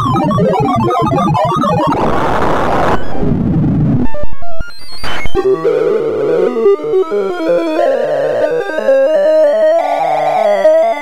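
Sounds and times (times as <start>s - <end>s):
synthesized beeping tones: 0.0s - 3.2s.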